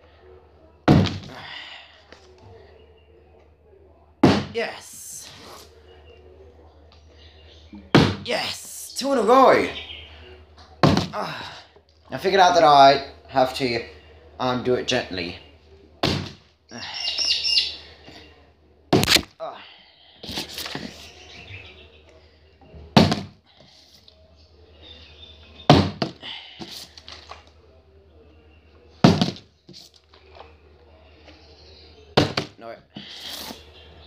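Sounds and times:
plastic bottle landing thunk: 0.9 - 1.3, 7.9 - 8.2, 10.8 - 11.2, 16.0 - 16.4, 22.9 - 23.4, 25.7 - 26.2, 29.0 - 29.5, 32.2 - 32.6.

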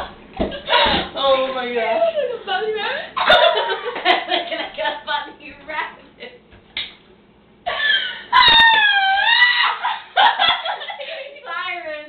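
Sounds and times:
girl squealing: 7.7 - 10.1.

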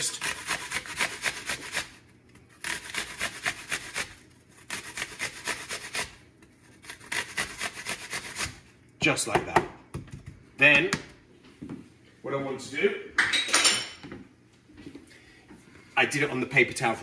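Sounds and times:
apple grated on metal grater: 0.0 - 8.6.

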